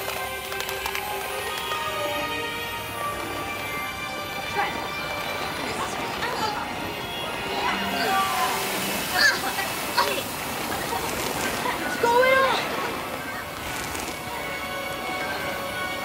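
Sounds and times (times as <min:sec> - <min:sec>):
background music: 0:00.0 - 0:16.0
children shouting: 0:01.0 - 0:16.0.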